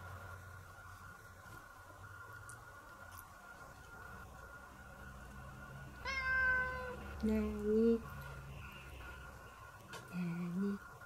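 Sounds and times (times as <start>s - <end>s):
cat meowing: 6.0s - 7.0s.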